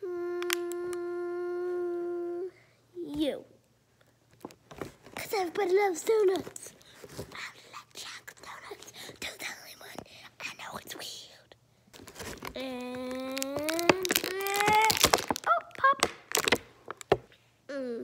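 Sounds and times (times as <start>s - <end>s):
plastic packaging clicking and crinkling: 11.9s - 17.2s
child holding long wordless note: 12.5s - 16.1s.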